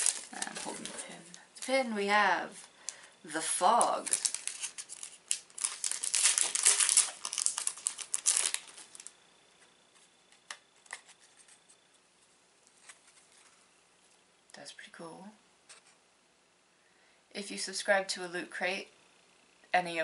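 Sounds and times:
plastic packaging crackling: 0.0s - 9.2s.

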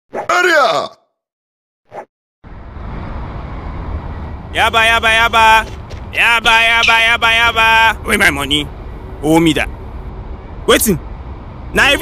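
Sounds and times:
street traffic rumble: 2.4s - 12.0s.

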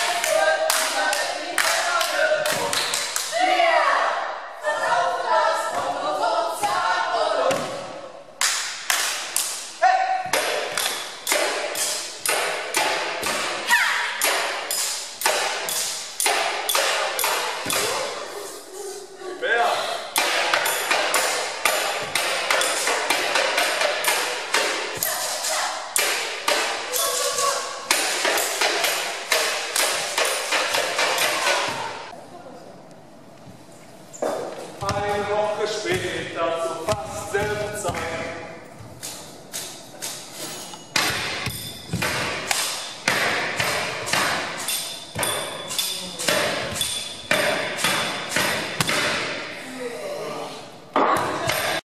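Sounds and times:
rhythmic percussion beat: 8.5s - 18.4s, 20.1s - 32.1s, 36.8s - 49.6s.

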